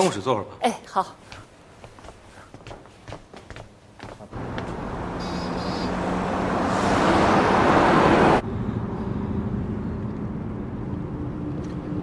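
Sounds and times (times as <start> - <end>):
engine and road hum inside vehicle: 4.3 - 12.0
car passing by: 4.4 - 8.8.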